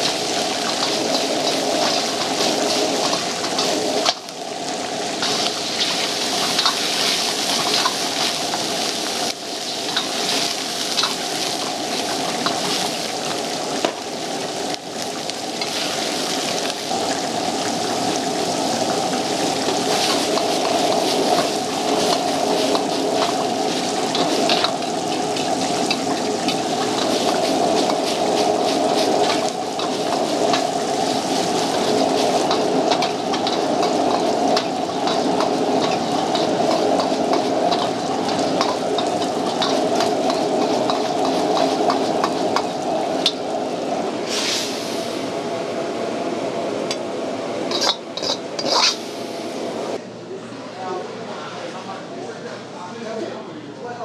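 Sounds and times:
noodles sizzling in a wok: 0.0s - 45.7s, 47.6s - 49.6s
gas burner roar: 0.0s - 50.0s
metal ladle scraping wok: 19.4s - 43.5s, 47.7s - 49.3s.

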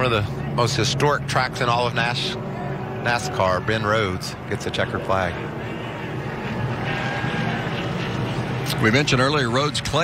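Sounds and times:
race truck engines droning: 0.0s - 10.0s.

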